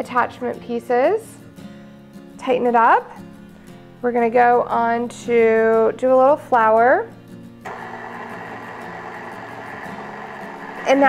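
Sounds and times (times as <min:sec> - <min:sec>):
stand mixer motor running: 0:07.7 - 0:11.0.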